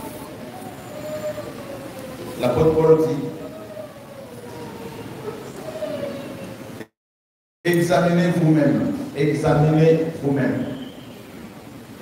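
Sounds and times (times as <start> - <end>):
hall full of seated people: 0.0 - 6.9, 7.7 - 12.0.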